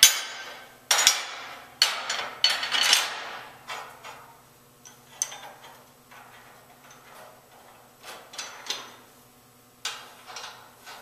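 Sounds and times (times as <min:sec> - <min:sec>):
steel parts clinking: 0:04.8 - 0:07.1.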